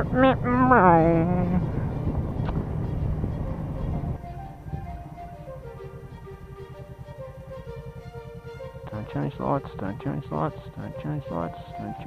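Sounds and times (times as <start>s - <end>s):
quiet background music: 0.0s - 12.0s
wind and motorcycle riding noise: 0.0s - 12.0s.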